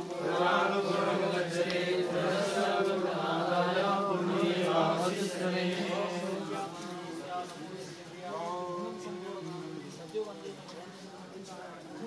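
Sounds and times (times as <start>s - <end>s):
group chanting: 0.0s - 9.3s.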